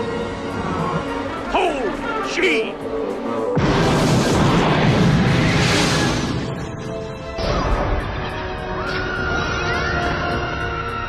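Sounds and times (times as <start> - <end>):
film music: 0.0 - 11.0
sudden crash: 3.6 - 8.1.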